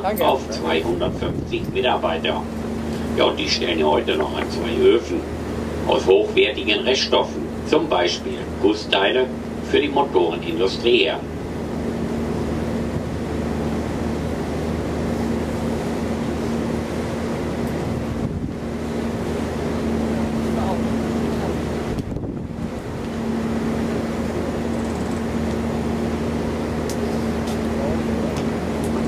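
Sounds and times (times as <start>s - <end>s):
boat engine humming: 0.0s - 29.0s
water noise: 0.0s - 29.0s
wind: 0.0s - 29.0s.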